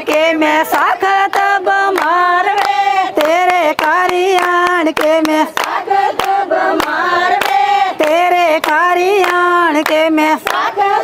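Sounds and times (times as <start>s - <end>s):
rhythmic hand claps: 0.0s - 11.0s
women singing: 0.0s - 11.0s.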